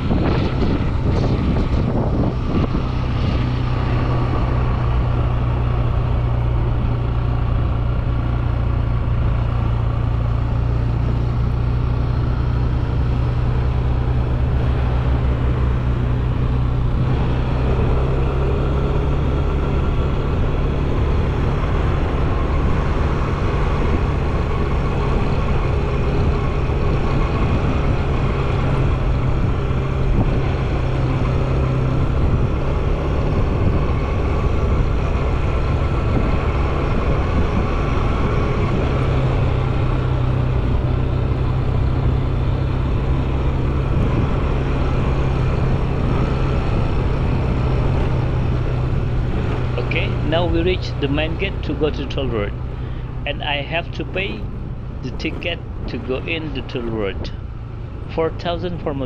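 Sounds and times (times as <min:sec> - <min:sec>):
motorbike engine cruising: 0:00.0 - 0:59.0
road noise: 0:00.0 - 0:59.0
wind: 0:00.0 - 0:59.0.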